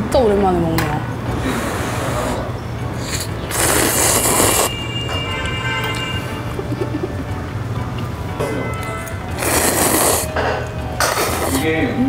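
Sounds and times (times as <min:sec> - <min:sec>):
light background music: 0:00.0 - 0:12.0
loud slurp of noodles: 0:01.4 - 0:04.8, 0:09.4 - 0:10.3, 0:11.0 - 0:11.6.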